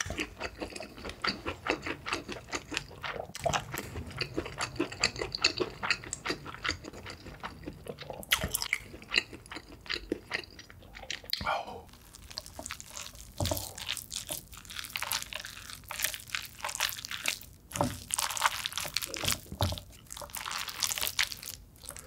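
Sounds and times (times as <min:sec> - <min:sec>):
close-miked chewing food: 0:00.0 - 0:22.0.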